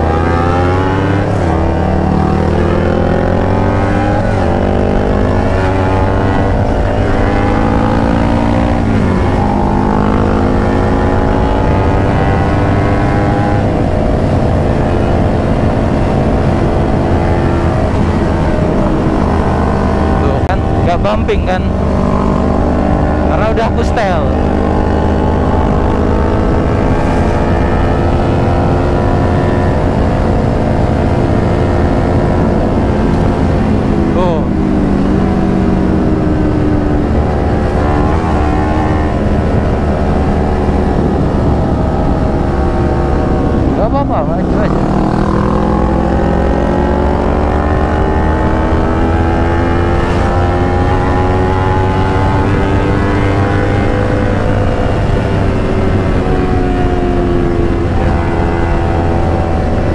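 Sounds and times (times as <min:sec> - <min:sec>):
motorcycle engine running: 0:00.0 - 0:59.9
wind rushing over microphone: 0:00.0 - 0:59.9.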